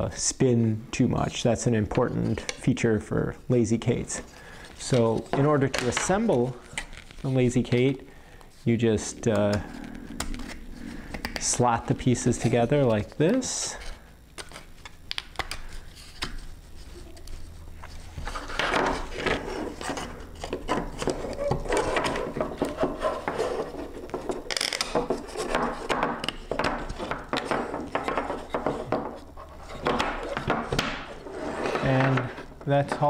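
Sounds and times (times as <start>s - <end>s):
wooden panels knocking and clicking: 24.2s - 29.2s, 29.8s - 31.1s.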